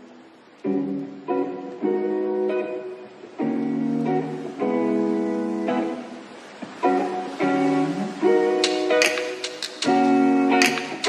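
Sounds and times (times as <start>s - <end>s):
acoustic guitar strumming chords: 0.6s - 11.0s.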